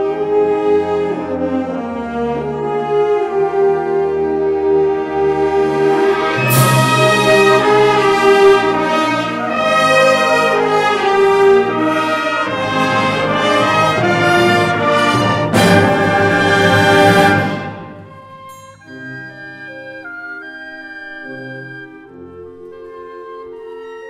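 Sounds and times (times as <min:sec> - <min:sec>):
soft held woodwind notes: 0:00.0 - 0:24.0
symphonic wind band playing: 0:00.0 - 0:24.0.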